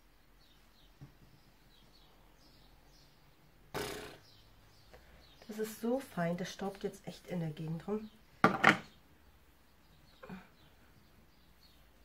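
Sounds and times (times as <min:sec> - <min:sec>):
faint bird chirps: 0:08.0 - 0:12.0.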